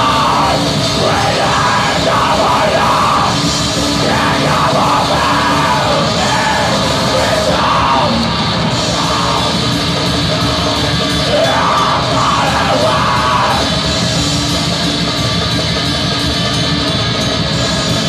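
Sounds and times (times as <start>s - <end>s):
harsh screamed vocal: 0.0s - 14.5s
metal band playing live: 0.0s - 18.0s.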